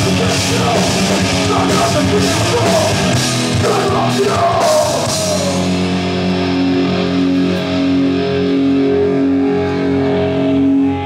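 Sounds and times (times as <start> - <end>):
distorted electric guitar chords: 0.0 - 11.0.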